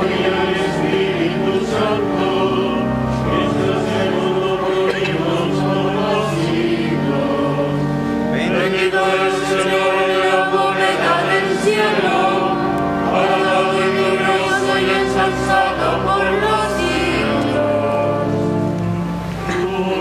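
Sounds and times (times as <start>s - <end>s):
choir singing liturgical chant: 0.0s - 20.0s.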